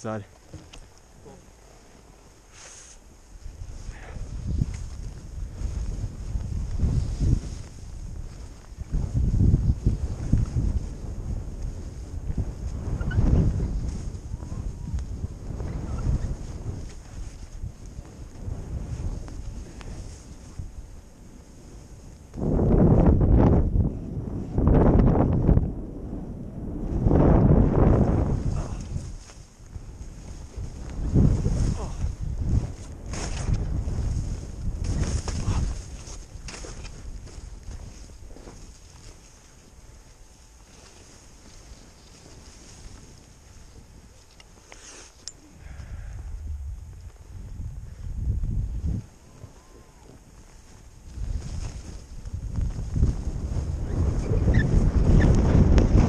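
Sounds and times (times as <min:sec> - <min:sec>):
wind rushing over microphone: 0:00.0 - 0:56.0
skis sliding through powder snow: 0:01.5 - 0:23.0, 0:26.7 - 0:45.2, 0:46.9 - 0:56.0.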